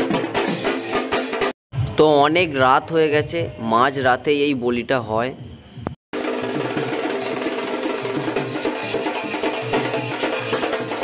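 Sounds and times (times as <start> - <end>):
drums in a fast rhythm: 0.0 - 3.7, 5.4 - 11.0.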